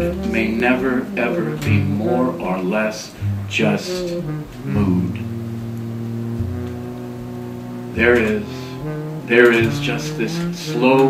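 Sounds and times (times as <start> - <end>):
guitar chords ringing: 3.2 - 10.4.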